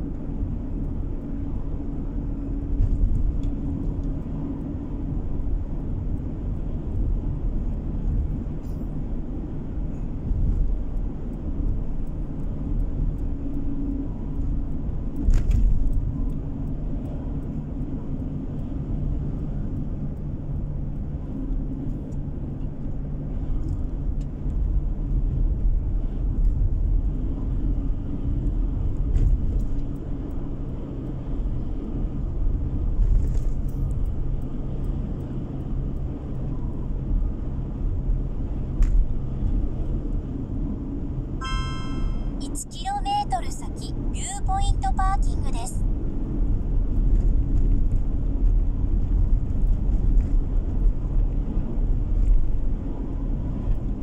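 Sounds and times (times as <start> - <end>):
car interior road and engine rumble: 0.0 - 54.0
faint steady drone: 40.3 - 45.8.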